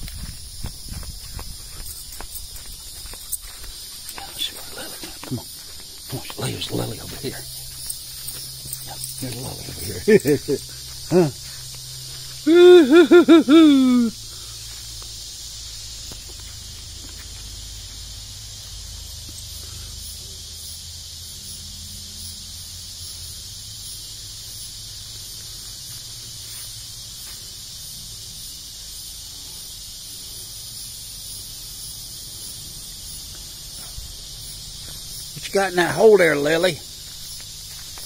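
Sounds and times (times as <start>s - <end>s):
insects chorus: 0.0s - 38.0s.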